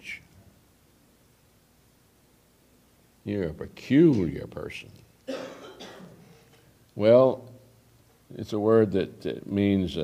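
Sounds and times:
man coughing: 0:05.3 - 0:06.7.

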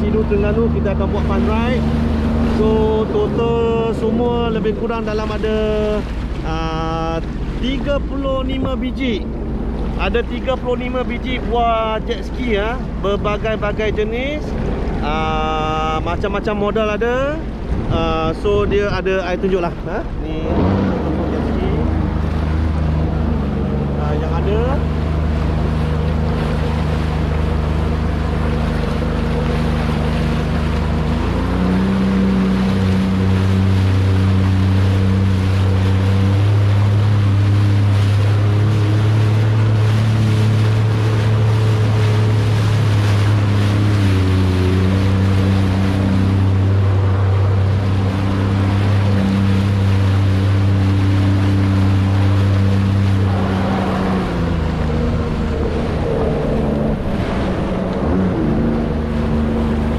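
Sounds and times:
jet ski engine: 0:00.0 - 0:59.9
water rushing past hull: 0:00.0 - 0:59.9.

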